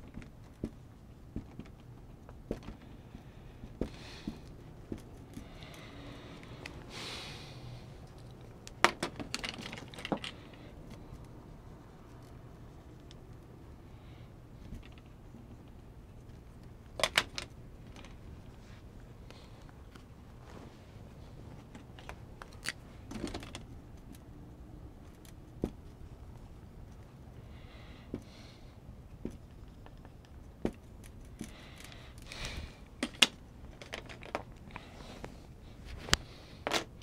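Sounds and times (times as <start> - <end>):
low steady hum: 0.0 - 37.0.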